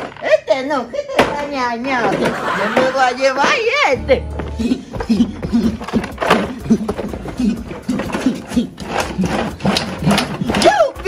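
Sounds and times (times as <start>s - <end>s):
man making wordless vocal sounds: 4.0s - 11.0s.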